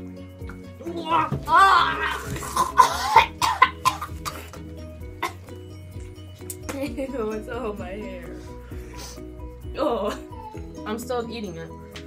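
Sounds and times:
background music: 0.0 - 12.0
girls coughing and spluttering: 1.5 - 5.6.

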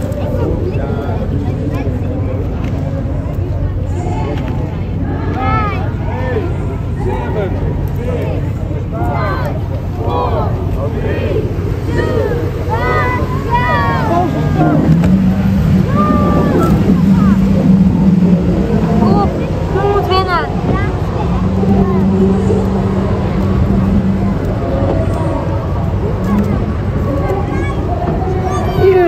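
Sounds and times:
boat motors humming: 0.0 - 29.0
voices talking: 0.0 - 29.0.

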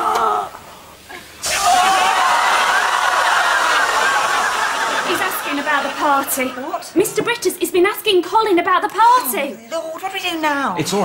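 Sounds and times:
audience laughing: 1.4 - 7.0.

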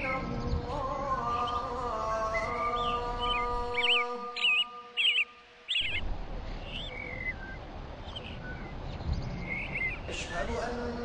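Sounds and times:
bird warbling chirps: 2.4 - 10.2.

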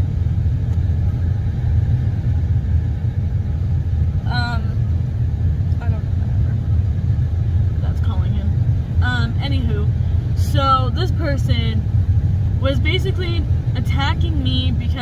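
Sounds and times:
car engine idling: 0.0 - 15.0
car heater blower: 0.0 - 15.0.

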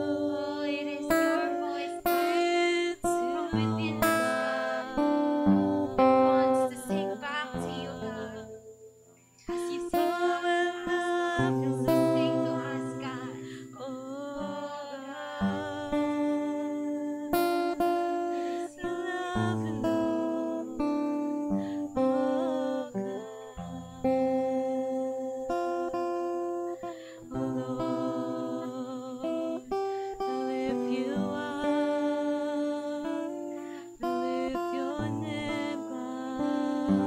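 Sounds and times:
woman singing: 0.0 - 8.8, 9.4 - 37.0
acoustic guitar strumming: 0.0 - 37.0.

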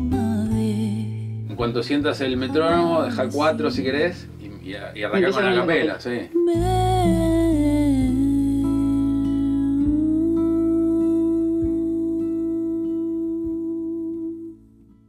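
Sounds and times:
plucked classical guitar notes: 0.0 - 15.0
woman singing a long note: 6.4 - 14.6.

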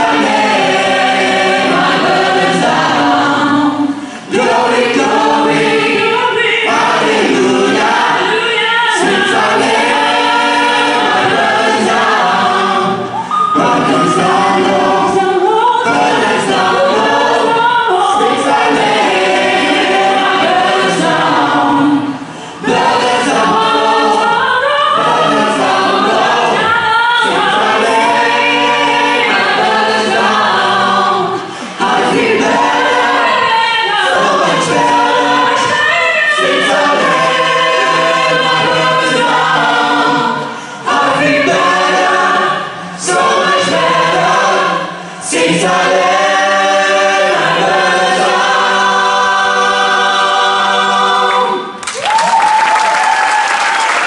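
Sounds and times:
choir singing gospel song: 0.0 - 54.0.

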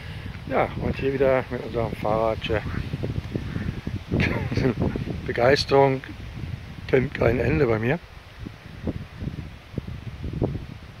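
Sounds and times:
faint steady hiss: 0.0 - 11.0
wind buffeting microphone: 0.0 - 11.0.

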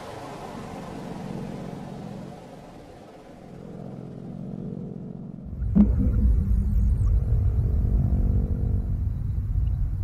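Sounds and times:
low rumbling drone: 3.4 - 10.0.

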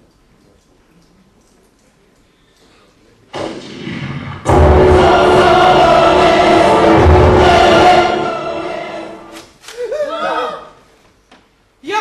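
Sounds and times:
choir singing with music: 3.4 - 9.5.

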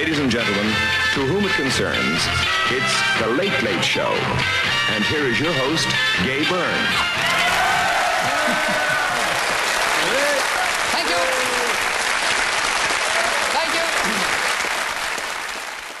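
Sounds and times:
studio audience applauding: 7.2 - 16.0.

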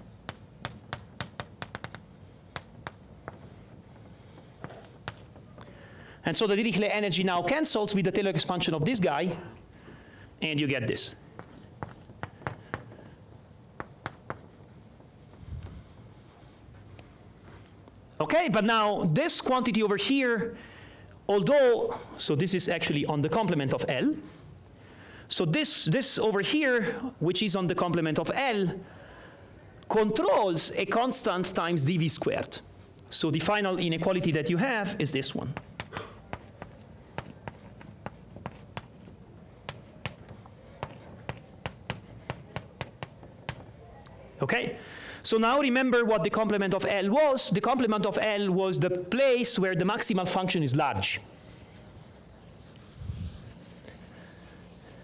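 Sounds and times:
chalk tapping on blackboard: 0.2 - 5.6, 11.4 - 14.6, 35.4 - 43.7, 51.5 - 55.0.

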